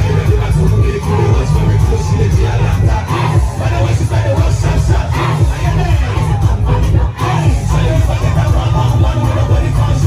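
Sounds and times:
crowd shouting and singing: 0.0 - 10.0
loud music with heavy bass: 0.0 - 10.0.

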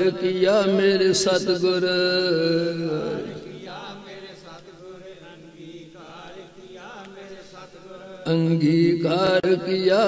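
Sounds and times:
faint wavering chanting voices: 0.0 - 10.0.

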